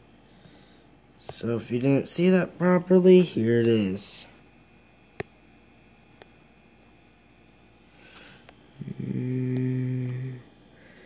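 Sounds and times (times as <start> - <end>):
low steady hum with overtones: 0.0 - 11.0.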